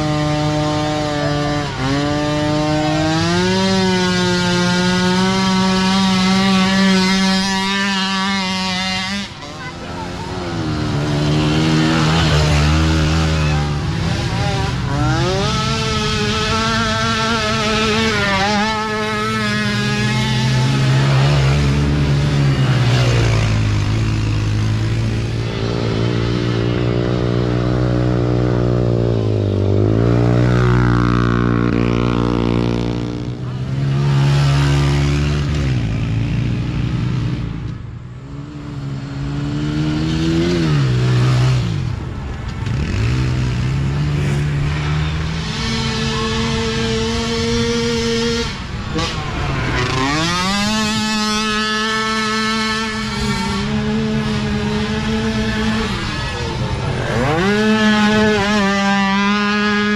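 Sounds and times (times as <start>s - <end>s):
small atv engines revving: 0.0s - 59.9s.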